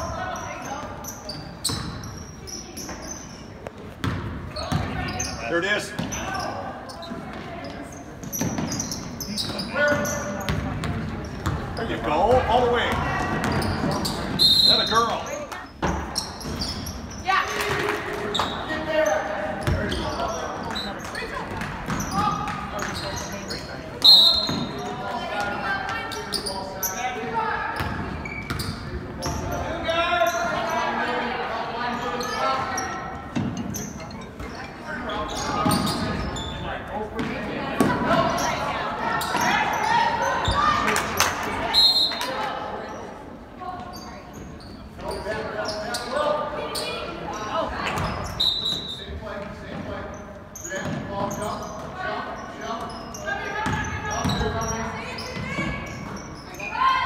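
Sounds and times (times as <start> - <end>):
spectators chattering: 0.0 - 57.0
referee's whistle blasts: 14.4 - 15.0, 24.0 - 24.7, 41.7 - 42.3.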